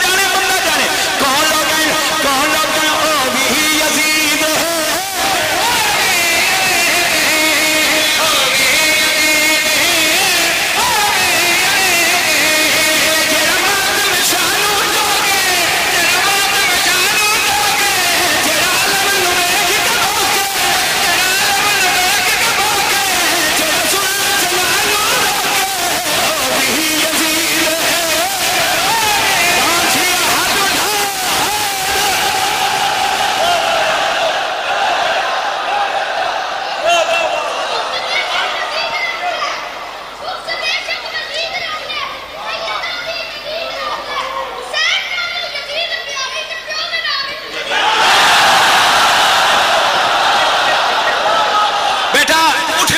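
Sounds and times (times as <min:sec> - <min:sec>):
man chanting into a microphone: 0:00.0 - 0:32.5
crowd voices: 0:00.0 - 0:52.9.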